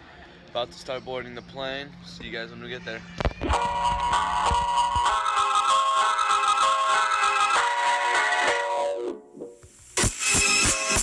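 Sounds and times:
background music with held notes: 3.4s - 9.4s.

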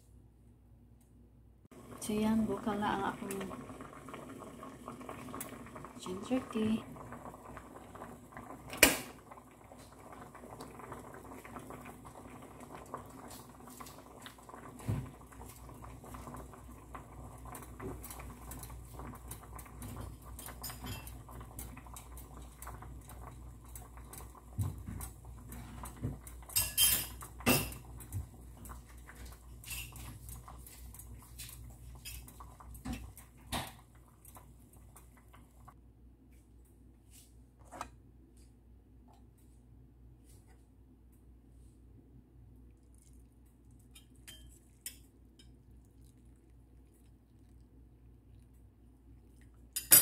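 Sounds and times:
water boiling in a saucepan: 1.7s - 35.8s, 41.6s - 50.0s.

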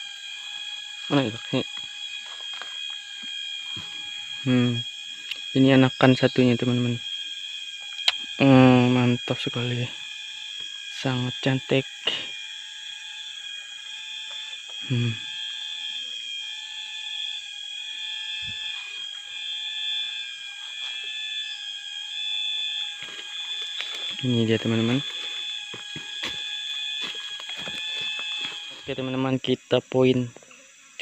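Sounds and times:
faint steady tones: 0.0s - 31.0s
insects high-pitched whine: 0.0s - 31.0s.

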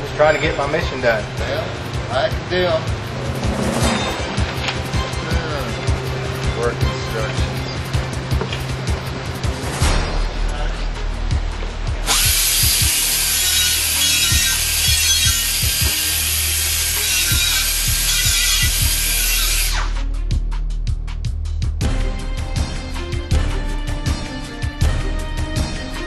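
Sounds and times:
background music: 0.0s - 26.0s
air grinder on metal: 12.0s - 20.0s.

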